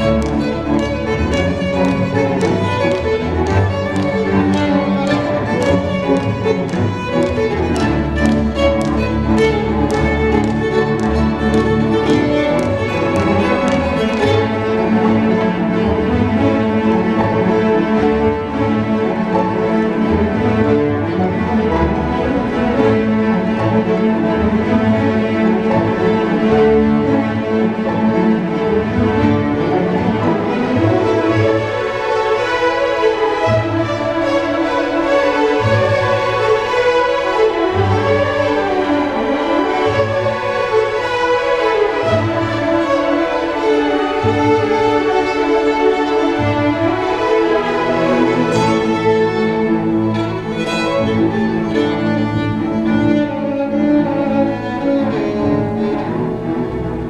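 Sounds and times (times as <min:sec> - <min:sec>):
solo violin: 0:00.0 - 0:57.0
string orchestra playing: 0:00.0 - 0:57.0.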